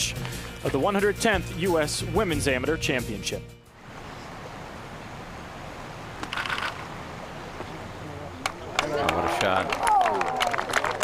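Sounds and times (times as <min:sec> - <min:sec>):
broadcast background hiss: 0:03.6 - 0:11.0.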